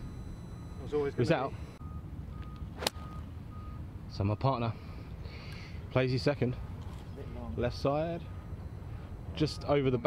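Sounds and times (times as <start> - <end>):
golf club hitting ball: 2.8 - 3.1.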